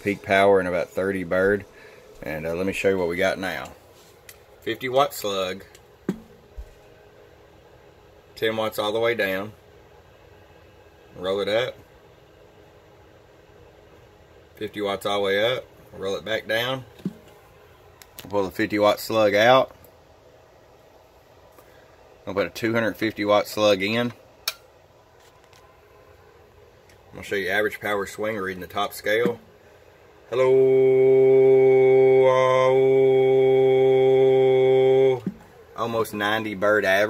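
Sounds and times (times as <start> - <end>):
faint room hum: 0.0 - 37.0.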